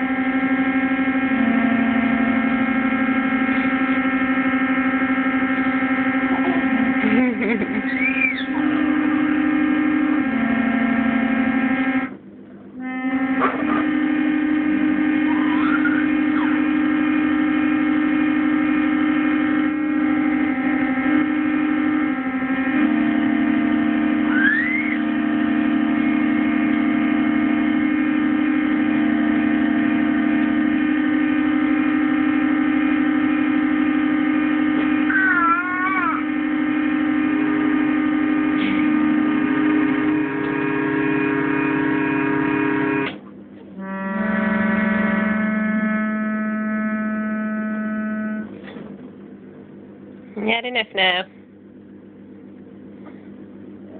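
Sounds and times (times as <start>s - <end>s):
electric organ chords: 0.0s - 50.7s.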